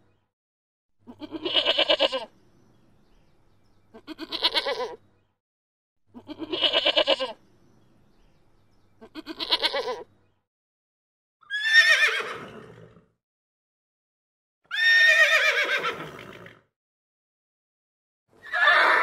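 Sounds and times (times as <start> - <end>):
goat bleating: 1.0 - 2.3, 3.9 - 5.0, 6.1 - 7.4, 9.0 - 10.1
horse whinnying: 11.4 - 13.0, 14.7 - 16.6, 18.4 - 19.0.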